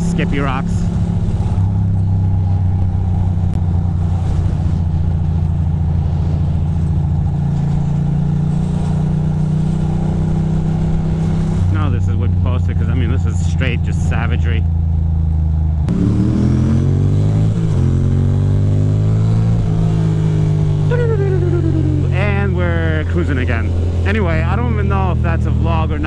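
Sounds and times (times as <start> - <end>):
motorcycle engine cruising: 0.0 - 26.0.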